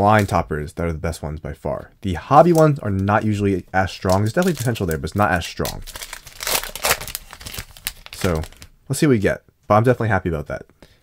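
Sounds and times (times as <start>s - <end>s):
foil wrapper crinkling and tearing: 2.4s - 8.7s.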